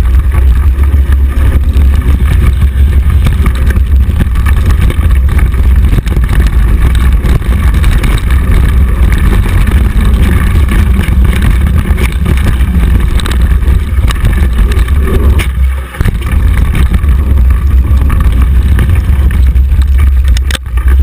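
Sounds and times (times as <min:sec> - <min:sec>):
bike clicks and rattles: 0:00.0 - 0:21.0
wind rumble on microphone: 0:00.0 - 0:21.0.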